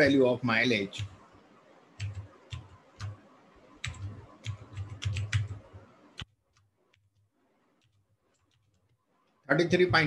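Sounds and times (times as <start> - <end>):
typing on computer keyboard: 2.0 - 3.2, 3.8 - 9.4.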